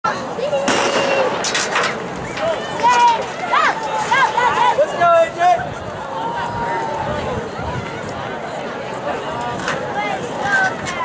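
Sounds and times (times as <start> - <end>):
spectators shouting and cheering: 0.1 - 11.0
starter's pistol shot: 0.7 - 1.7.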